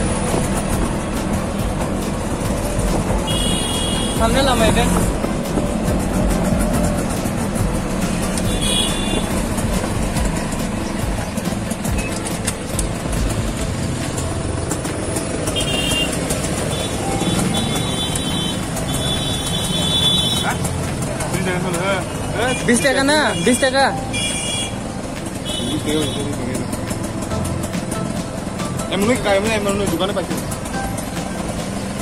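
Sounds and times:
auto-rickshaw engine running: 0.0 - 32.0
road traffic: 0.0 - 32.0.

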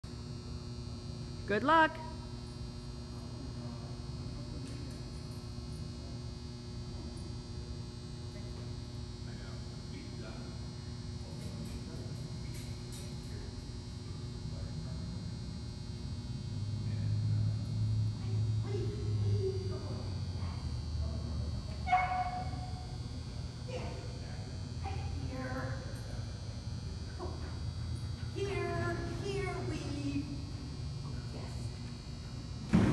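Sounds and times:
electrical hum: 0.0 - 32.9.

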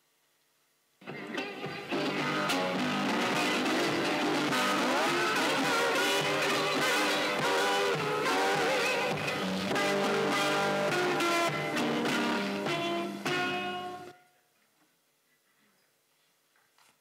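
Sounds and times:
blues guitar with bent notes: 1.0 - 14.2.

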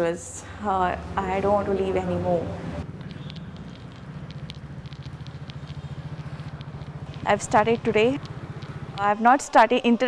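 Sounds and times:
vehicle engine running: 0.4 - 9.4.

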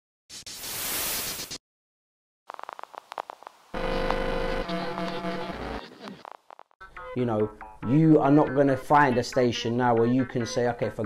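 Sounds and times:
static hiss: 2.5 - 6.7.

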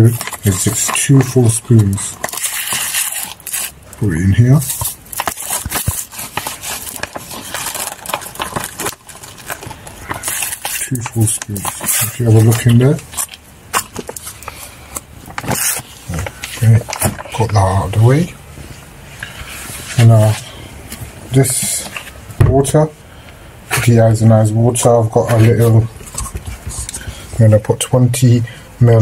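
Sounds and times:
plastic bag crinkling: 0.0 - 18.2.

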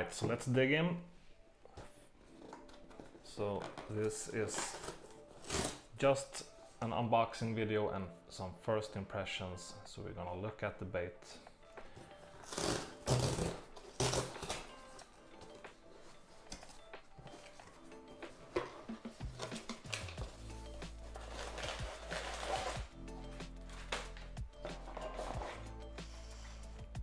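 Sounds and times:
background music: 0.0 - 27.0
packing paper rustling: 12.3 - 22.9
cardboard box tearing: 12.4 - 14.7.

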